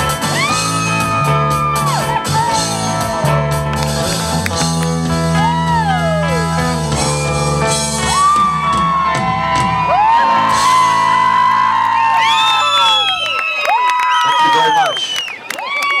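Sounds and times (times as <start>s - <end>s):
bass guitar: 0.0s - 13.2s
audience whooping and cheering: 0.2s - 16.0s
audience clapping: 1.7s - 5.6s, 8.2s - 16.0s.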